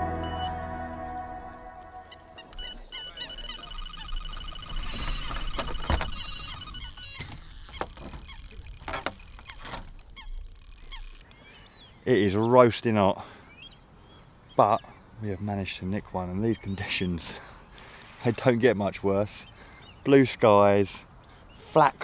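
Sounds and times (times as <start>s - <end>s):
music: 0.0s - 2.2s
bite alarm high beeps: 0.1s - 0.6s, 2.3s - 7.8s.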